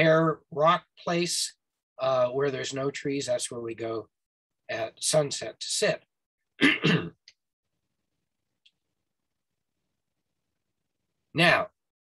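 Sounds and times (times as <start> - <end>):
man clearing his throat: 6.6 - 7.2.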